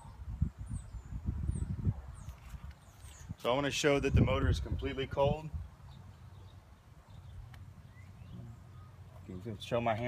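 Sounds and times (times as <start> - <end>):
faint chirp: 5.9 - 9.2.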